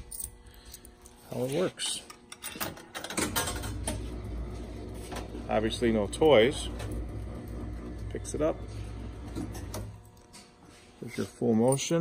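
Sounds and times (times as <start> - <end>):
crane machine humming: 3.7 - 10.5.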